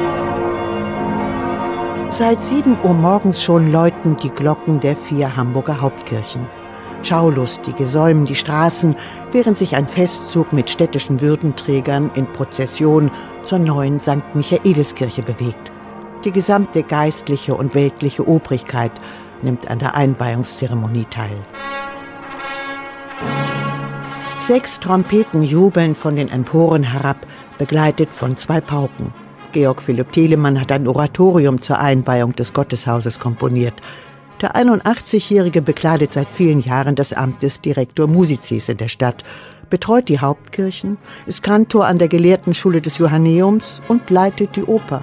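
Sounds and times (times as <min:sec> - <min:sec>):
church bells ringing: 0:00.0 - 0:30.3
festive brass music with trumpets: 0:00.0 - 0:45.0.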